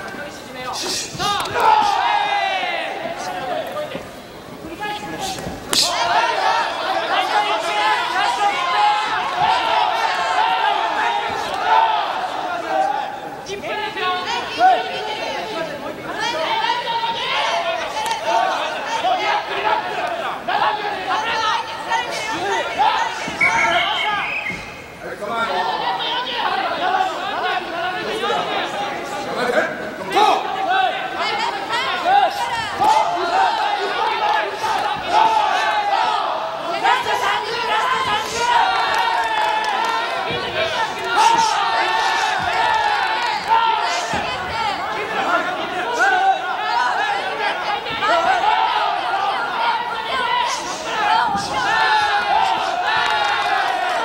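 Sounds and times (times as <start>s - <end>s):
arena crowd noise: 0.0s - 54.0s
loud shout falling in pitch: 30.0s - 54.0s.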